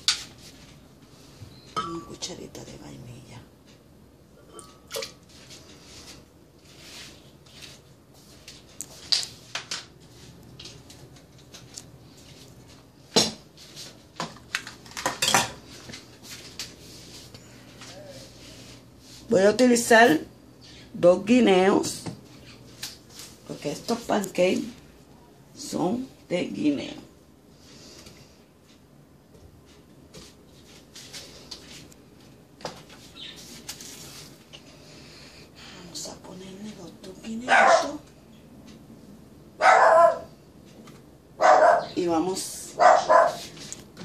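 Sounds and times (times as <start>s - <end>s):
dishes and utensils clattering: 15.0s - 15.7s.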